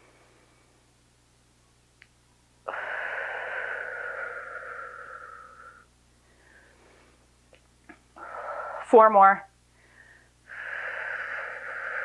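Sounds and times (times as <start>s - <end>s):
forceful breath out: 2.7s - 7.2s.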